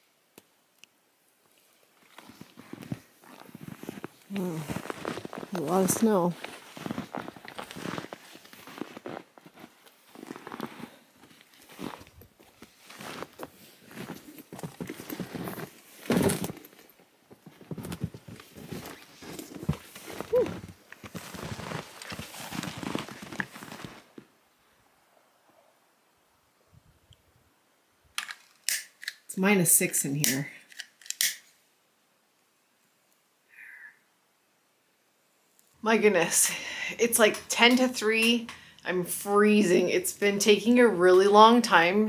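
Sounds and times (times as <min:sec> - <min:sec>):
snowshoe footsteps crunching snow: 0:01.9 - 0:24.3
sharp clicks: 0:28.2 - 0:29.2.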